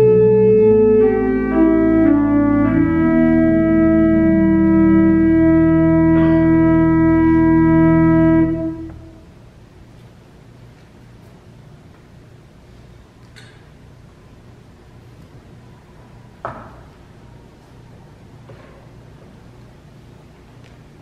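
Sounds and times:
organ playing sustained chords: 0.0s - 9.6s.

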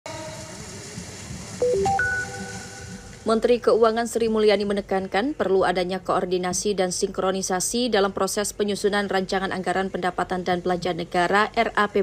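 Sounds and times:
quick run of beeping tones: 1.6s - 3.1s
faint steady electronic tones: 1.6s - 12.0s.

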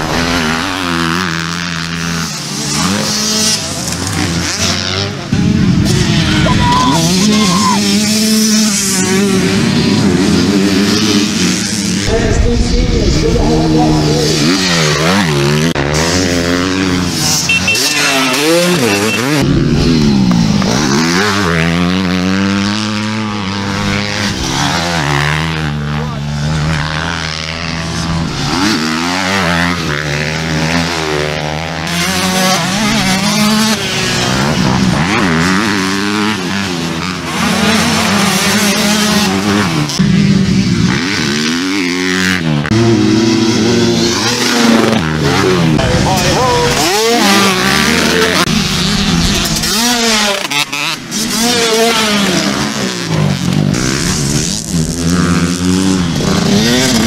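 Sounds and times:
motocross bike engines revving: 0.0s - 57.0s.

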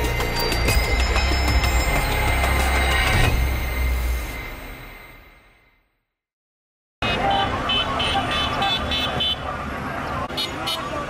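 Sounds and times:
car horn tooting: 7.0s - 9.5s, 10.3s - 11.0s
people chattering: 7.0s - 11.0s.

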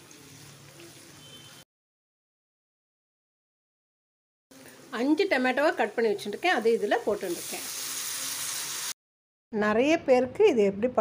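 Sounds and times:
tomatoes sizzling in oil: 0.0s - 1.6s, 4.5s - 9.0s.

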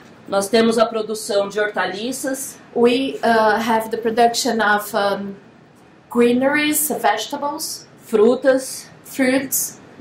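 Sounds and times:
woman speaking: 0.3s - 5.4s, 6.1s - 9.8s.

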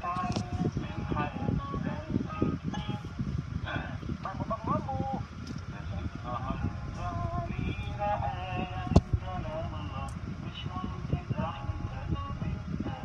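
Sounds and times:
car cabin rumble: 0.0s - 13.0s.

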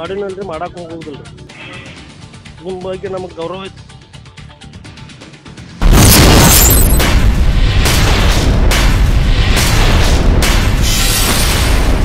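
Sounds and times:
music: 0.0s - 12.0s
cinematic boom: 5.8s - 12.0s
sharp hits: 5.8s - 12.0s.

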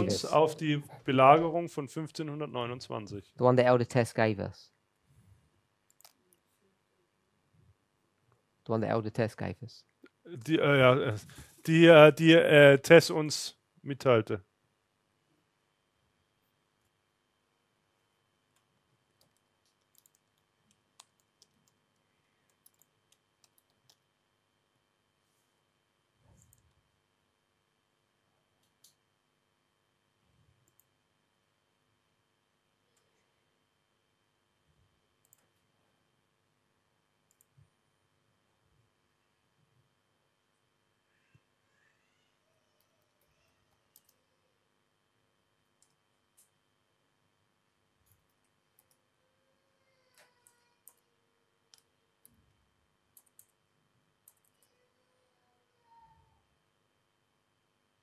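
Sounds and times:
laptop keys clicking: 19.2s - 21.8s, 22.5s - 24.0s, 53.2s - 53.6s, 54.2s - 54.6s.

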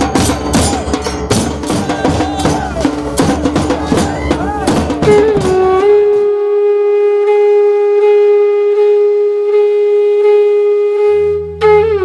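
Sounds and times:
wind instrument long note: 3.8s - 12.0s.

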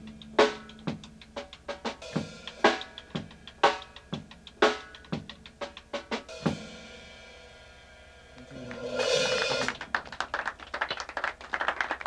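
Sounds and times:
small audience clapping: 8.5s - 12.0s.

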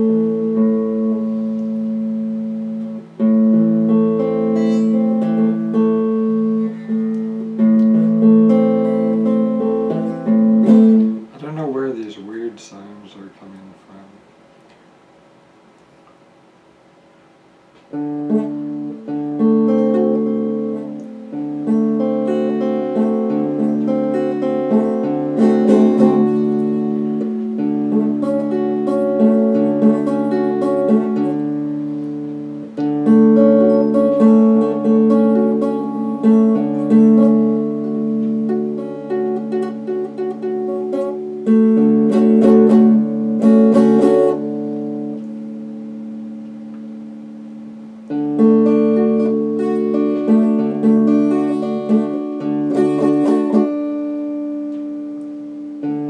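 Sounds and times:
electric guitar played slowly: 0.0s - 14.9s, 17.6s - 56.0s.

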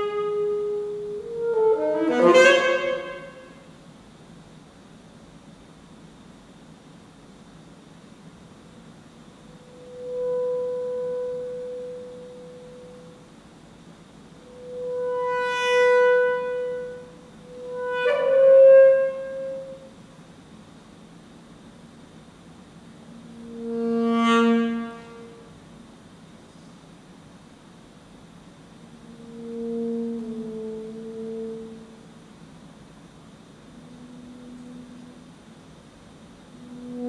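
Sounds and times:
alto saxophone note: 0.0s - 3.7s, 9.6s - 13.2s, 14.4s - 20.0s, 23.1s - 25.5s, 28.9s - 32.1s, 33.7s - 35.4s, 36.5s - 37.0s.

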